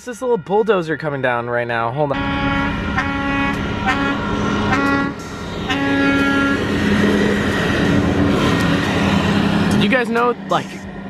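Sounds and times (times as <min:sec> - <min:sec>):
train horn blasts: 0:02.1 - 0:06.7.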